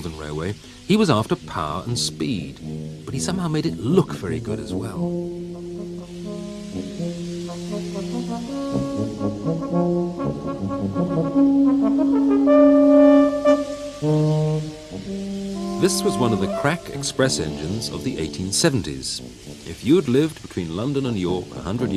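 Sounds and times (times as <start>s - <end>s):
brass playing slow melody: 0.0s - 21.9s.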